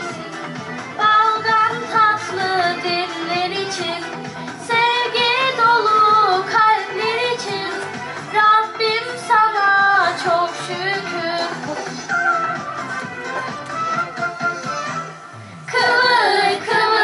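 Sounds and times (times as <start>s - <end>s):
instrumental backing music: 0.0s - 17.0s
girl singing into microphone: 1.0s - 11.8s.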